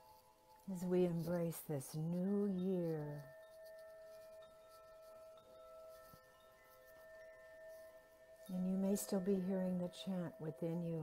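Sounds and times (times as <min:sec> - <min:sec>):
metal chime ringing: 0:00.0 - 0:11.0.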